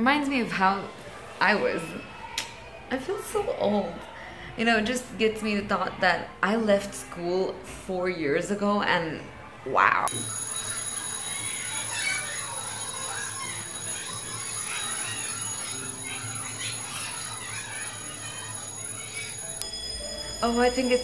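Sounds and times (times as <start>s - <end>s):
muffled distant voices: 0.0s - 21.0s
fire alarm tones: 10.1s - 21.0s.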